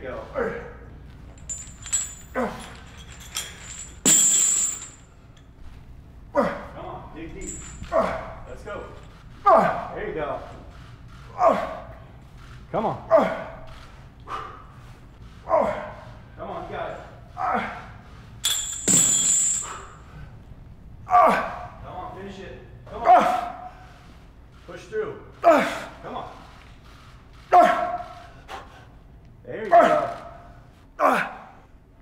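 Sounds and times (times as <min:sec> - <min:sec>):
heavy chains clinking and rattling: 0:01.0 - 0:05.7, 0:07.2 - 0:09.9, 0:18.3 - 0:20.2
metal gym equipment clanking: 0:01.3 - 0:05.1, 0:18.4 - 0:20.0.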